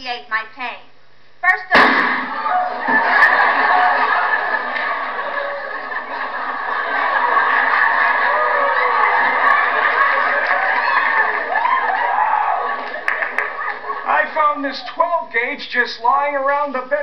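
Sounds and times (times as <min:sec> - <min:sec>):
audience laughing and cheering: 0:02.0 - 0:15.3
whoops from crowd: 0:02.3 - 0:04.3, 0:07.7 - 0:13.0.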